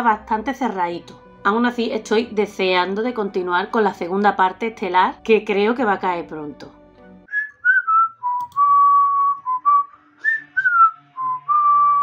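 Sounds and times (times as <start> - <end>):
woman whistling a tune: 7.3 - 12.0.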